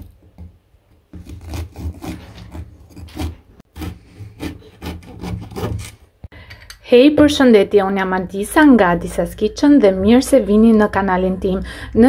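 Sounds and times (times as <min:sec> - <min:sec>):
knife sawing through bread crust: 0:01.2 - 0:06.0.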